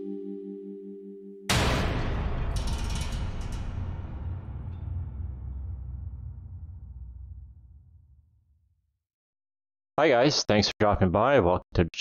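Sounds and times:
fireball burst: 1.5s - 8.0s
low rumble: 1.5s - 8.6s.

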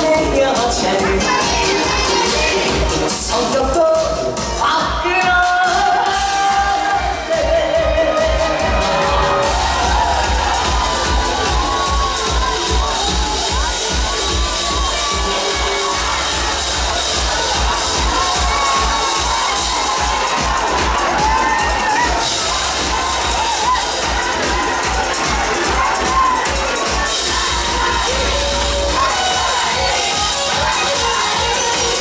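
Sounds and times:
crowd cheering and shouting: 0.0s - 32.0s
drum kit playing: 0.0s - 32.0s.

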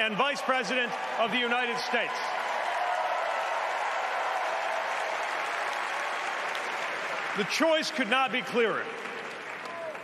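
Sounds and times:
crowd applauding: 0.0s - 10.0s.

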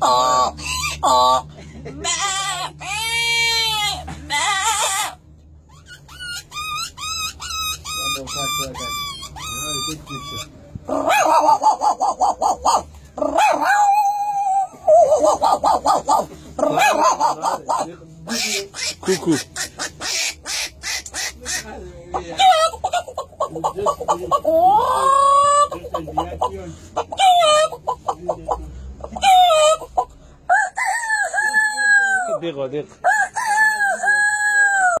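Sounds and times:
man imitating dog yapping: 13.2s - 17.6s
man imitating rooster crowing: 33.0s - 35.0s.

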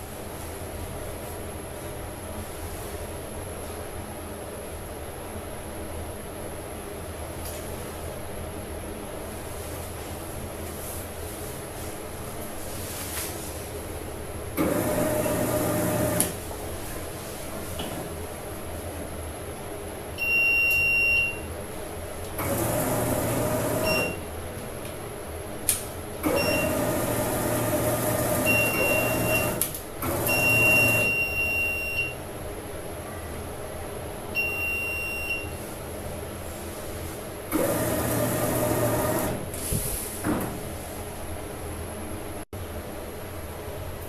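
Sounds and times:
printer platen drive running: 14.6s - 16.4s, 22.4s - 24.2s, 26.2s - 31.2s, 37.5s - 39.5s.

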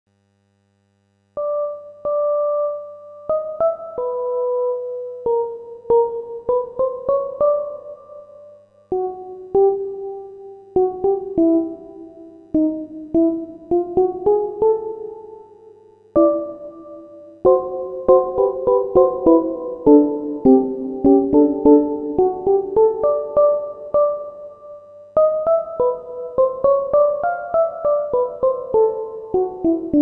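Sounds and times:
slow piano-like keyboard melody: 1.4s - 30.0s.

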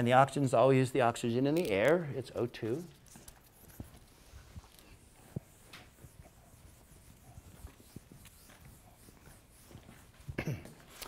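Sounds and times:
footsteps on hard floor: 3.7s - 10.9s.

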